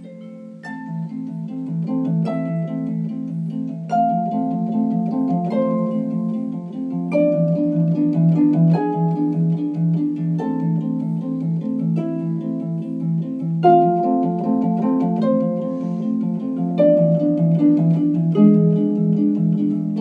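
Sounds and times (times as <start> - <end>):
harp arpeggios: 0.0 - 20.0.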